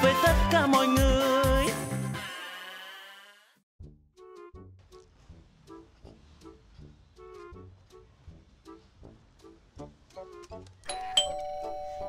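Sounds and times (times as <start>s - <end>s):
light background music: 4.2s - 12.0s
electronic two-tone doorbell chime: 10.9s - 12.0s.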